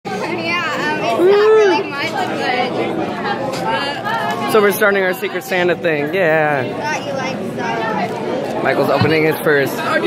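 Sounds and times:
people chattering in echoing room: 0.1 - 10.0.

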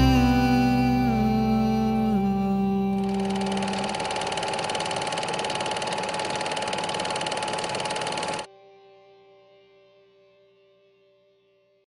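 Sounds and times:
held musical note: 0.0 - 4.2
fast-pulsing mechanical rattle: 3.0 - 8.5.

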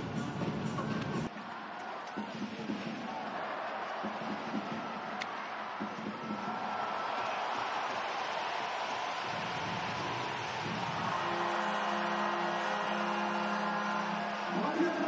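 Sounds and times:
arena crowd noise: 0.0 - 15.0
loud horn tone: 11.1 - 15.0.

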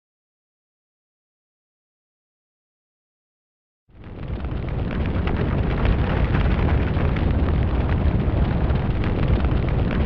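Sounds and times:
large fire rumbling and crackling: 3.9 - 10.0.

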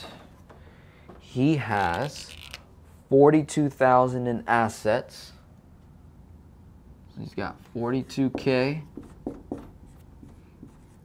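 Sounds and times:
marker writing on whiteboard: 8.0 - 11.0.

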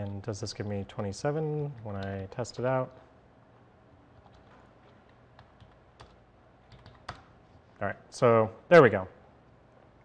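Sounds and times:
keyboard keystrokes: 5.4 - 7.3.

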